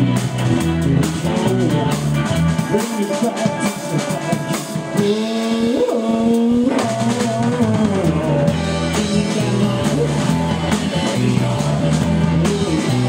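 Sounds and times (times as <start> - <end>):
bass: 0.0 - 13.0
drum kit beat: 0.0 - 13.0
lead guitar with bent notes: 0.0 - 13.0.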